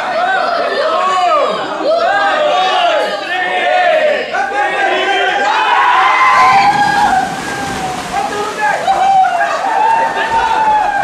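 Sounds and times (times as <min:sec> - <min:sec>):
water splashing in a pool: 0:05.8 - 0:11.0.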